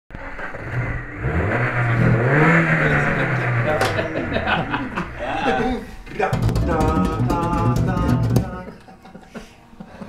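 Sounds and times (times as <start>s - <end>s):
car engine revving: 0.1s - 5.1s.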